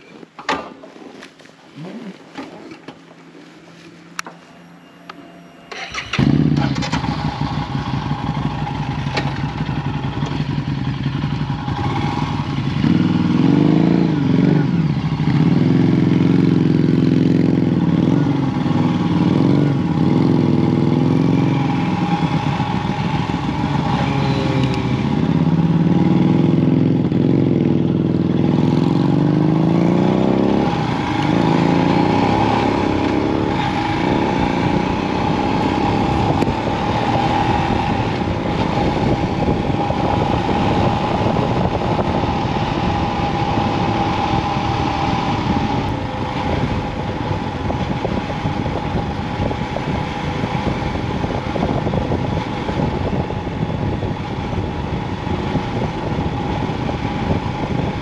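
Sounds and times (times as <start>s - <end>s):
motorcycle engine accelerating: 4.1s - 58.0s.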